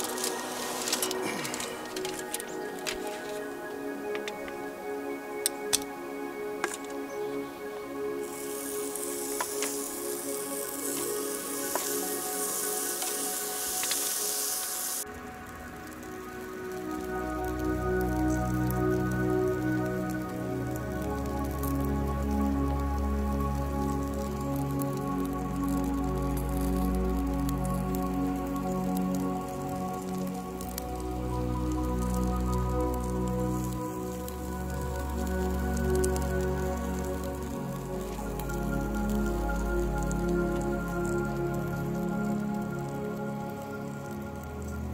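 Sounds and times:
meat sizzling on a grill: 0.0s - 4.2s, 7.9s - 44.9s
background music: 0.0s - 44.9s.

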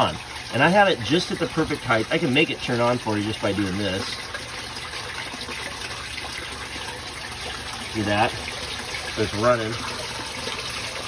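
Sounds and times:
water running and splashing: 0.0s - 11.0s.

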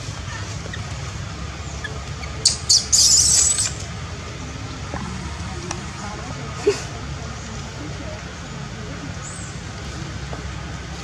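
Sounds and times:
low background rumble: 0.0s - 11.0s
baby monkey squeaking and squealing: 1.6s - 3.8s.

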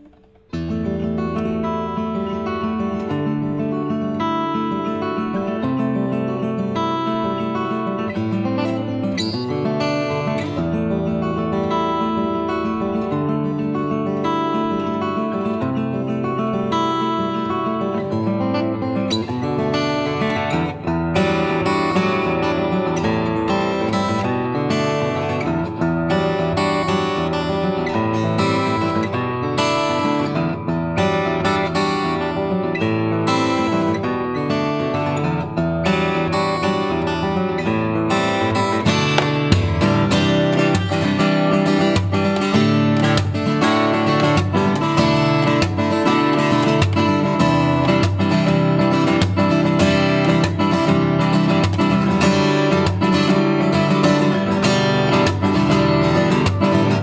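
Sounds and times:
fingerstyle acoustic guitar: 0.0s - 57.0s.

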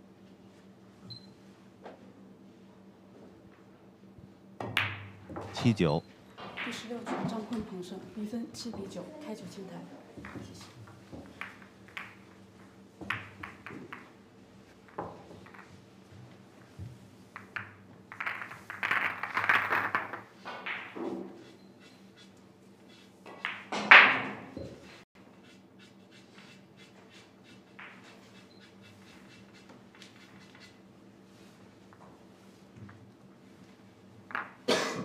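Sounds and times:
pool balls clicking: 10.2s - 14.2s, 17.3s - 21.3s, 34.3s - 34.6s.

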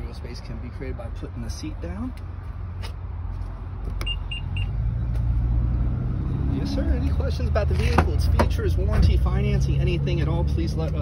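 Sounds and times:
high-pitched car warning beeps: 4.0s - 4.8s.

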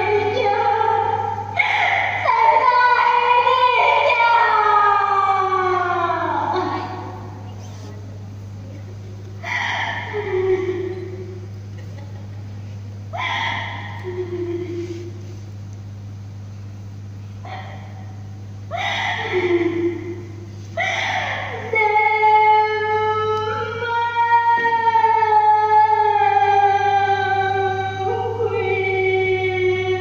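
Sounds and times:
woman's high-pitched sung cry: 0.0s - 7.3s, 9.4s - 11.4s, 18.7s - 30.0s
steady low hum: 0.0s - 30.0s
woman singing: 21.7s - 30.0s.

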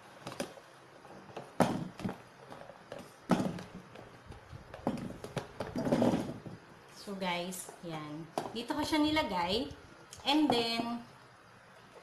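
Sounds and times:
potatoes tumbling into a pot: 1.2s - 6.7s.

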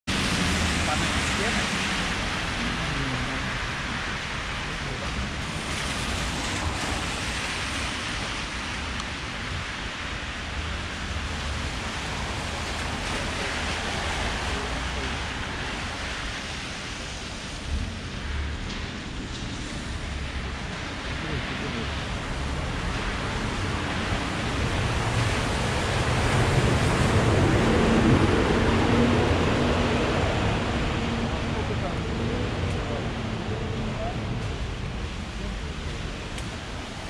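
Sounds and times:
car tyres on wet street: 0.0s - 37.0s
low rumble: 0.1s - 37.0s
rain hissing: 0.1s - 37.0s.

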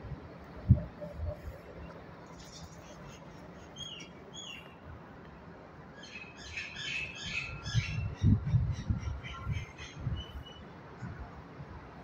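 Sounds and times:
small birds chirping: 2.3s - 4.8s.

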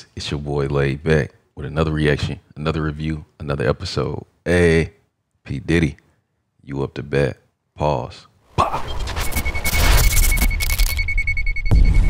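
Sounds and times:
sharp hit: 8.6s - 12.0s
rapidly pulsing beep tone: 8.8s - 12.0s.

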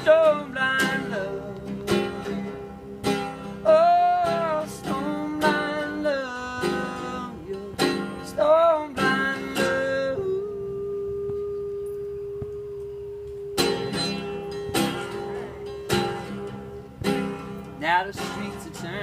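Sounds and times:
solo guitar music: 0.0s - 19.0s.

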